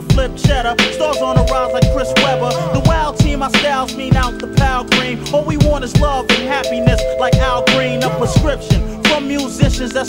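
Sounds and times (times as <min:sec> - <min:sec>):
rapping over a drum beat: 0:00.0 - 0:10.0.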